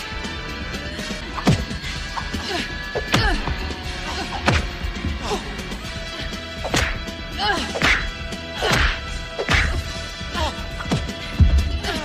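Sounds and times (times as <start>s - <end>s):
fighters grunting and shouting: 2.2s - 12.0s
punch and kick hits: 6.6s - 7.0s, 7.8s - 9.8s.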